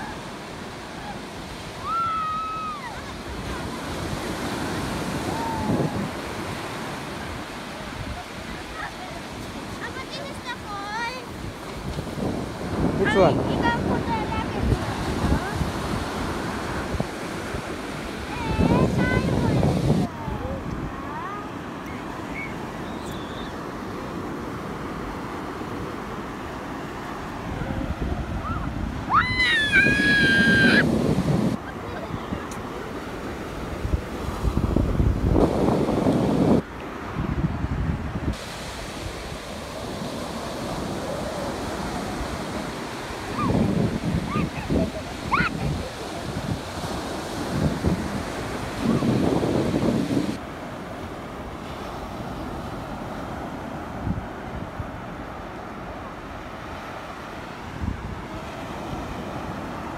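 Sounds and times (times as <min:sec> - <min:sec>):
surf breaking on beach: 0:00.0 - 0:59.9
wind gusting on microphone: 0:00.0 - 0:59.9
high-pitched cry: 0:29.1 - 0:30.9.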